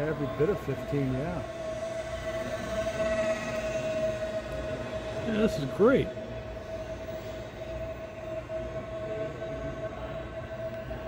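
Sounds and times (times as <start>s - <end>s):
model plane motor whine: 0.0s - 11.0s.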